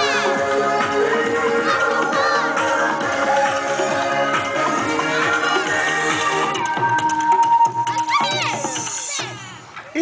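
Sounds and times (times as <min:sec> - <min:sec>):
high-pitched voices shouting: 0:00.0 - 0:00.5, 0:01.5 - 0:02.9
dance music: 0:00.0 - 0:10.0.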